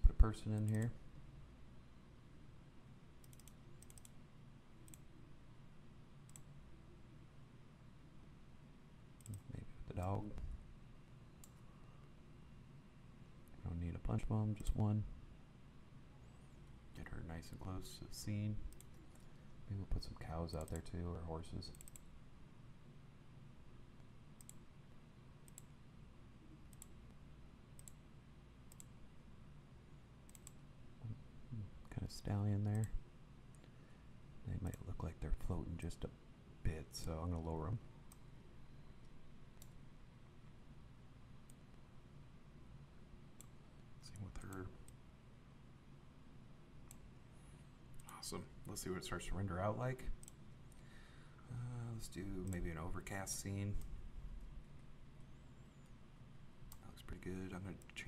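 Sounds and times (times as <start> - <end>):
low background hum: 0.0 - 58.0
computer mouse buttons clicking: 0.6 - 0.9, 3.2 - 4.2, 4.8 - 5.1, 9.2 - 9.5, 11.4 - 11.7, 18.7 - 19.3, 20.5 - 20.9, 21.7 - 22.1, 24.4 - 24.6, 25.4 - 25.7, 26.7 - 27.0, 27.8 - 28.0, 28.7 - 28.9, 30.3 - 30.6, 39.0 - 39.8.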